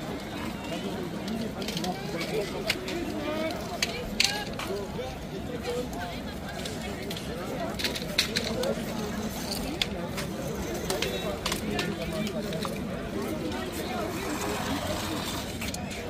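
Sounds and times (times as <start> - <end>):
many people talking: 0.0 - 16.0.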